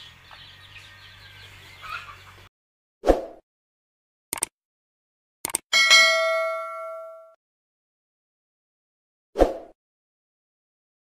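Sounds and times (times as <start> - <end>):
bright bell ding: 5.8 - 7.4.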